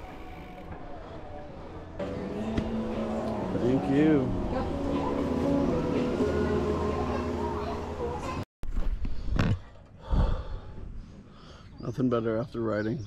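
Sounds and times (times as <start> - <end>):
murmur of voices: 0.1 - 8.4.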